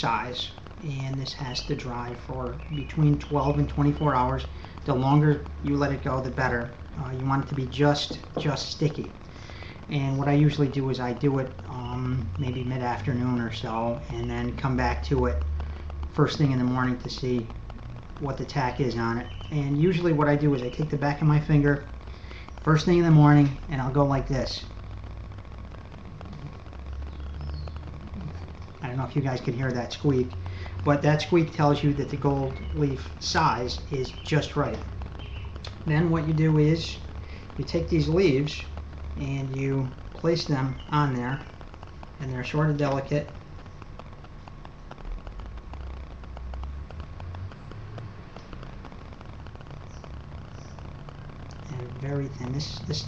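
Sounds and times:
light ticks and rustling: 0.0s - 53.0s
low rumble: 0.0s - 53.0s.

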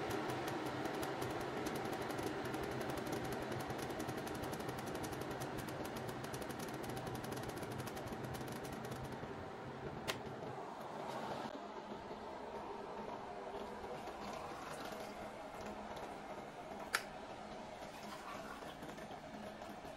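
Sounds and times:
kettle water heating: 0.0s - 19.9s.

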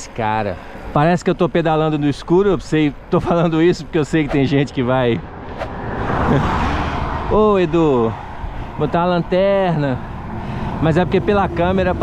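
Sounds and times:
car passing: 4.0s - 12.0s.

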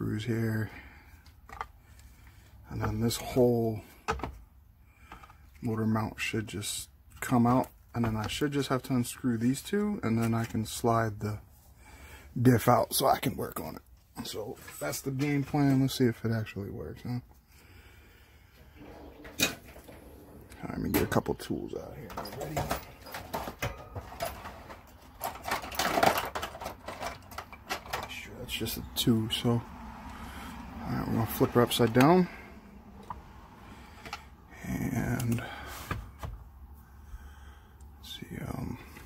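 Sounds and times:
metal and plastic scraping and knocking: 4.0s - 4.4s, 18.6s - 28.4s.

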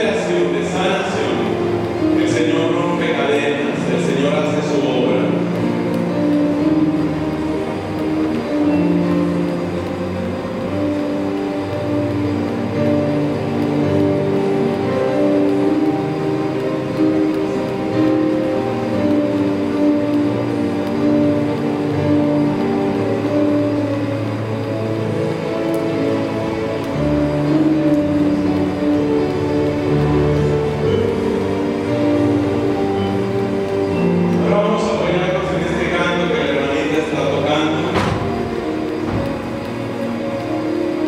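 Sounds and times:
electronic keyboard chords: 0.0s - 41.0s.

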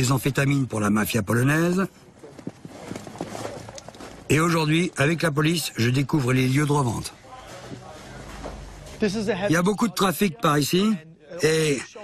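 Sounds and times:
footsteps on snow: 2.3s - 4.6s.

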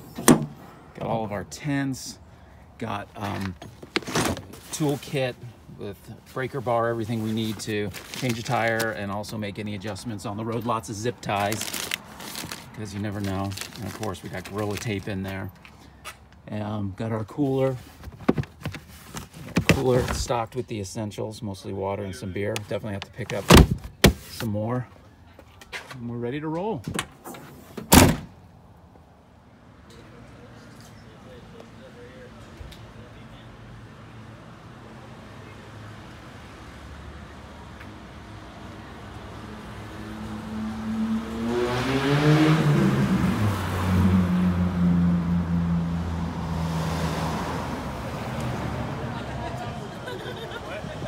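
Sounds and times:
car liftgate slamming shut: 0.1s - 0.6s, 27.8s - 28.3s
vehicle engine revving: 39.5s - 49.0s.

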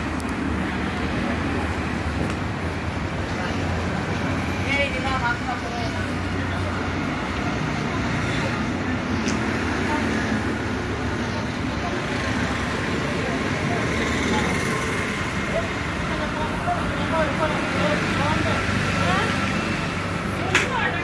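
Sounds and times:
indistinct voices of passersby: 0.0s - 21.0s
road traffic noise: 0.0s - 21.0s.

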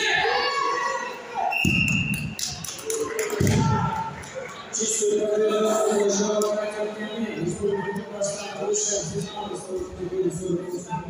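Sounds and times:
voices echoing in a sports hall: 0.0s - 11.0s
referee's whistle: 1.4s - 2.4s.

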